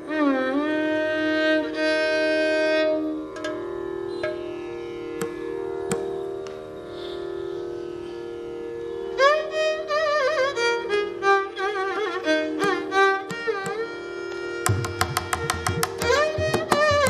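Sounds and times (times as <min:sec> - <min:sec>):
violin long note: 0:00.0 - 0:17.0
sharp percussion strokes: 0:14.6 - 0:17.0.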